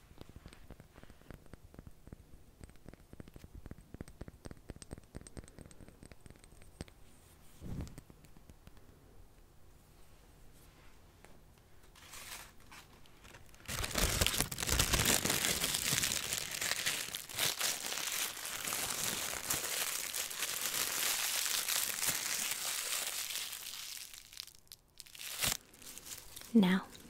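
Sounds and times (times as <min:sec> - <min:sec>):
plastic sheet crinkling: 0:11.9 - 0:27.0.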